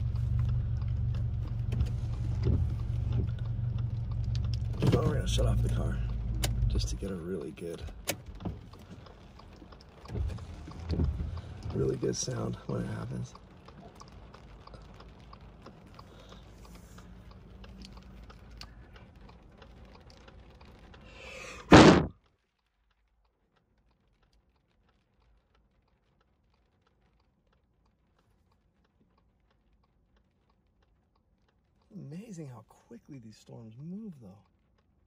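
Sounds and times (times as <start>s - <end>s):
light rain on a car: 0.0s - 35.0s
sudden loud burst: 21.6s - 22.1s.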